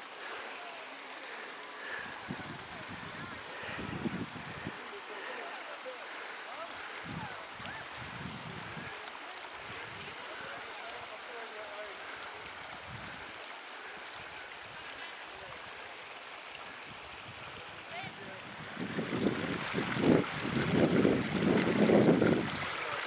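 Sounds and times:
stream trickling: 0.0 - 23.0.

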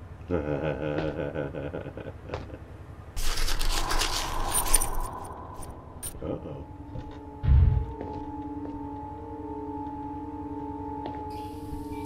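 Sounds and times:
rustling: 3.2 - 5.7
small metallic jingles: 3.2 - 6.2.

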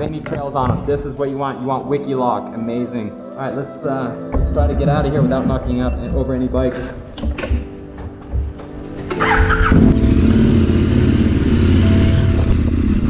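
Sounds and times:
motorcycle engine starting and idling: 8.3 - 13.0.

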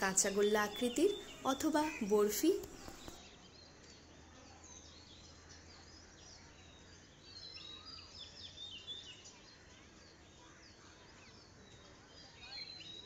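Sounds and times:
small birds chirping: 0.0 - 13.0.

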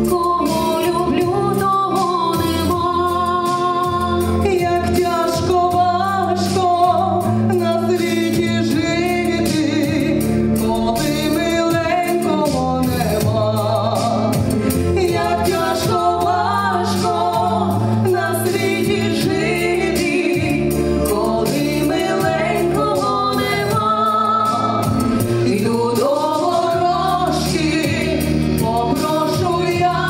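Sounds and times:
amplified backing music: 0.0 - 30.0
women singing into microphones: 0.0 - 30.0.

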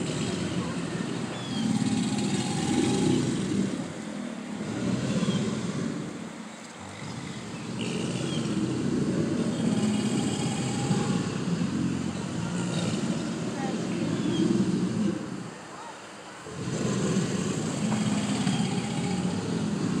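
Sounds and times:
alligators bellowing: 0.0 - 20.0.

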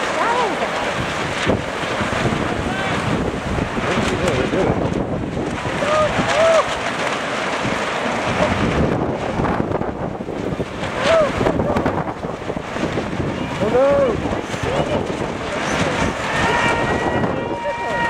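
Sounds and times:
wind buffeting microphone: 0.0 - 18.0
voices calling out: 13.4 - 18.0.

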